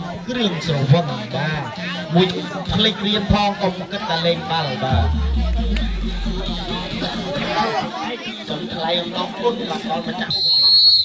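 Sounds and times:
voices talking and chattering: 0.0s - 11.0s
low hum sinking in pitch: 4.9s - 7.6s.

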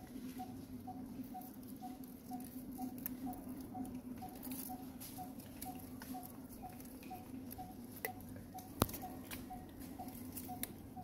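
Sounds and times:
clicks and rustles in dry leaves: 0.0s - 10.8s.

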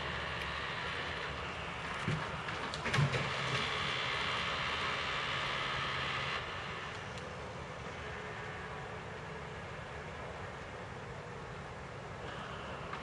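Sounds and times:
truck engine running: 0.0s - 11.4s
hydraulic whine and hum: 0.0s - 13.0s.

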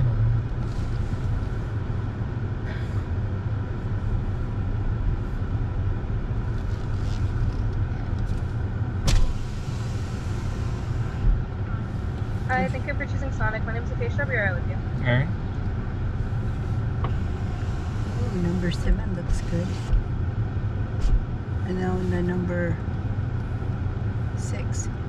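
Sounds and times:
car engine and tyres rumbling: 0.0s - 25.0s
short thump: 9.0s - 9.4s.

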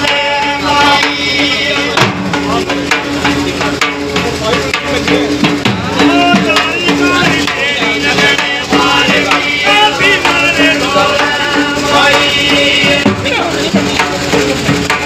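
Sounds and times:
voices singing: 0.0s - 3.2s, 5.8s - 15.0s
barrel drums beaten with sticks: 0.0s - 15.0s.

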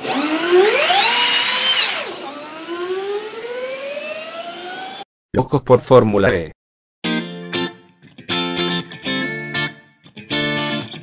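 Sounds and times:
electric race car motor whine: 0.0s - 5.0s.

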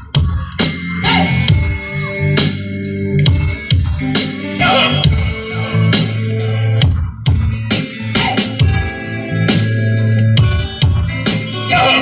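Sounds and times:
loud dance music with heavy bass: 0.0s - 12.0s.

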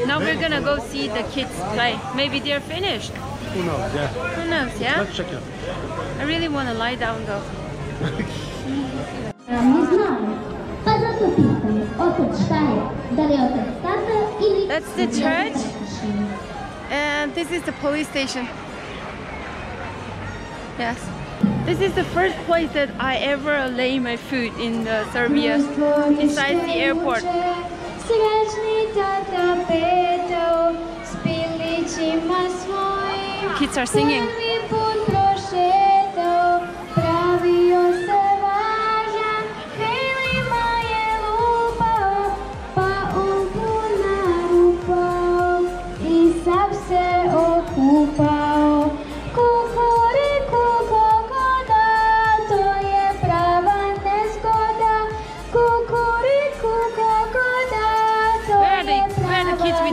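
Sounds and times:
children singing together: 34.2s - 58.6s
musical backing with beat: 40.1s - 59.9s.

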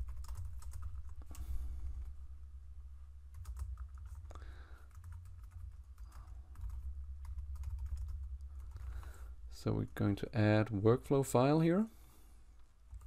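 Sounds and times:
keyboard typing: 0.0s - 2.2s, 3.3s - 9.2s
low steady hum: 0.0s - 13.0s.

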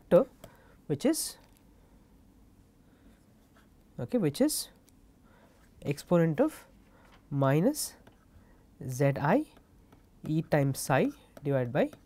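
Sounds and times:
stylus scratching on tablet screen: 9.3s - 12.0s.

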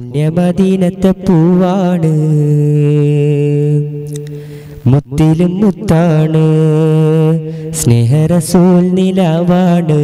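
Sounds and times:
man singing unaccompanied: 0.0s - 10.0s.

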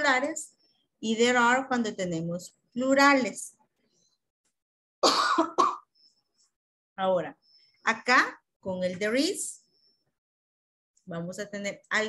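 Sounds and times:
person coughing: 5.0s - 5.9s.

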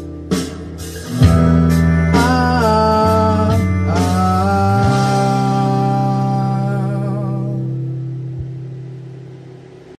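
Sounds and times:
acoustic guitar chord ringing: 0.0s - 9.1s.

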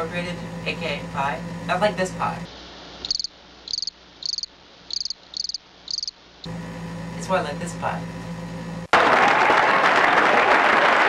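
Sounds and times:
crickets chirping: 3.0s - 6.2s.

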